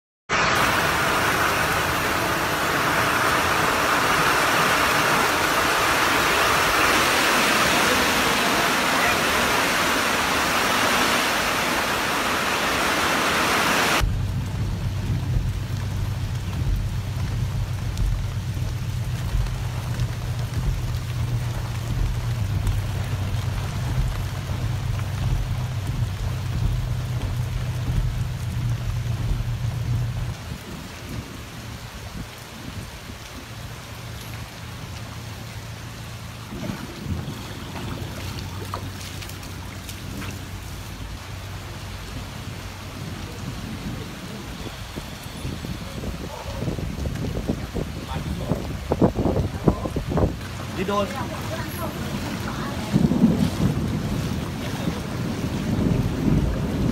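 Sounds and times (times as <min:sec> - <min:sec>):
heavy rain pouring: 0:00.3 - 0:56.9
low hum: 0:14.0 - 0:30.4.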